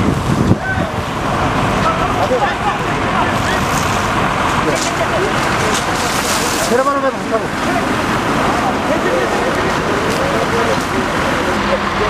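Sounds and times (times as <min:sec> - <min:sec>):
faint voices: 0:00.0 - 0:12.0
fire burning with a rushing noise: 0:00.0 - 0:12.0.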